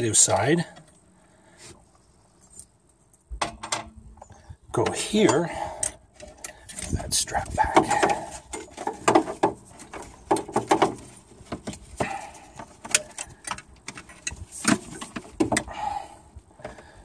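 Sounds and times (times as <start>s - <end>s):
small metal clicks and knocks: 2.4s - 11.8s, 12.5s - 15.7s.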